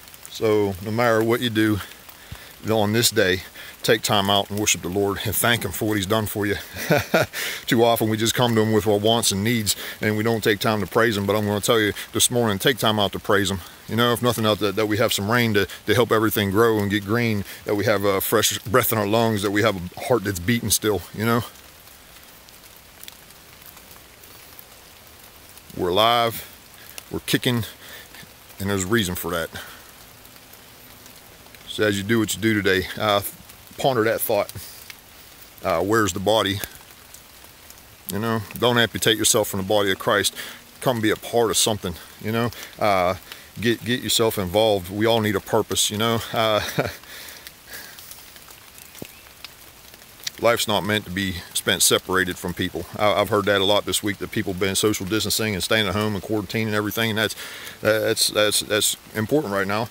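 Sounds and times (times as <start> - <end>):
light steady rain: 0.0 - 59.9
raindrop ticks: 0.0 - 59.9.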